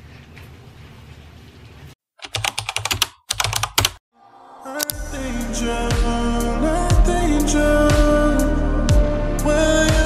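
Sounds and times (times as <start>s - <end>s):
music: 4.2s - 10.0s.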